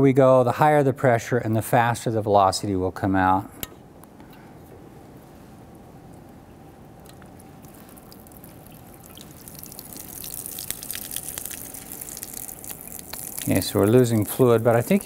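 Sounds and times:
water jets splashing into sink: 9.0s - 15.0s.

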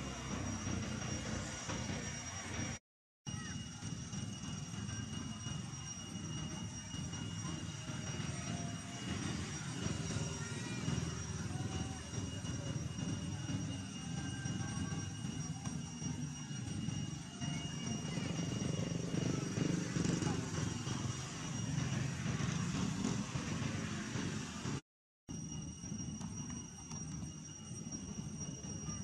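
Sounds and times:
low engine drone: 0.0s - 2.8s, 4.5s - 24.8s
thin high whine: 0.0s - 29.0s.

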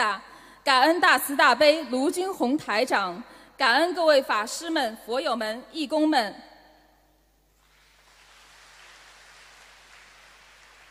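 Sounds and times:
faint audience applause: 7.6s - 10.9s.

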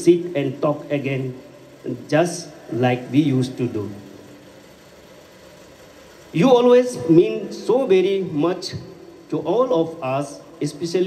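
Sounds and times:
faint background hum and hiss: 0.0s - 11.0s.

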